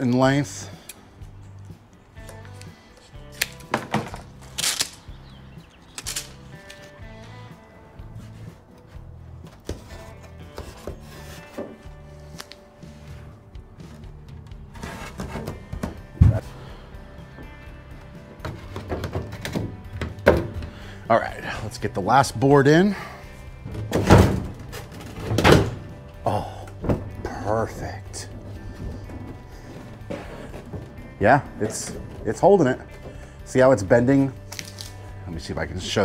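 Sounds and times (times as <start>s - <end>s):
background music with bass line: 0.0s - 36.0s.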